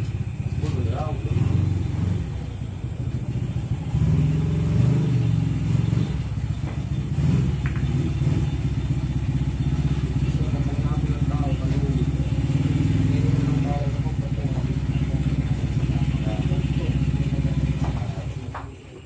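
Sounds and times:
low engine hum: 0.0 - 19.0
background voices: 9.9 - 19.0.

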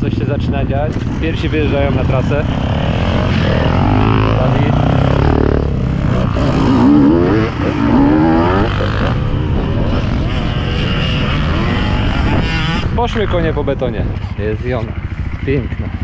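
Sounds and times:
dirt bike engines revving: 0.0 - 16.0.

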